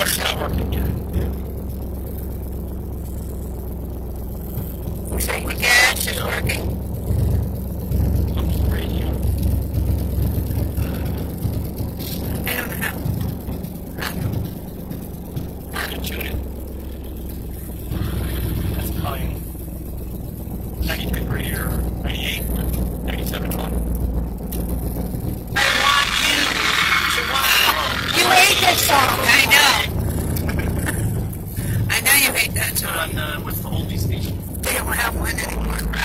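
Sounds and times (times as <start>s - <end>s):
car engine rumbling inside cabin: 0.0s - 36.0s.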